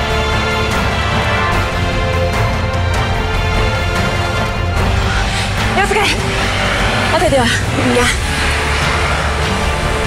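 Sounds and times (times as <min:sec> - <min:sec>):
background music: 0:00.0 - 0:10.0
low rumble: 0:04.2 - 0:10.0
people speaking: 0:05.7 - 0:06.2, 0:07.1 - 0:08.2.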